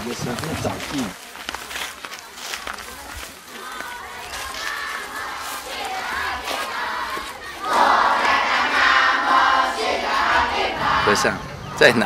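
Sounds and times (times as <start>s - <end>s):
children singing together: 4.3s - 11.3s.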